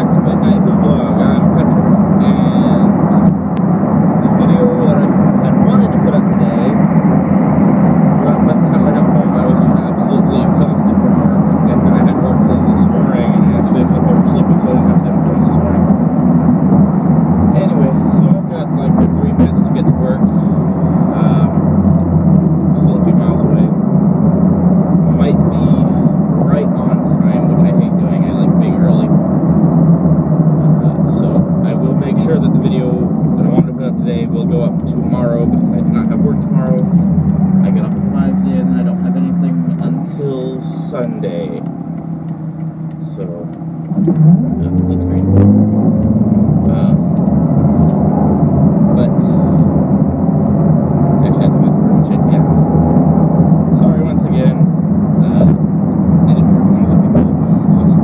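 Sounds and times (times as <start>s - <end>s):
car cabin road and engine noise: 0.0s - 58.0s.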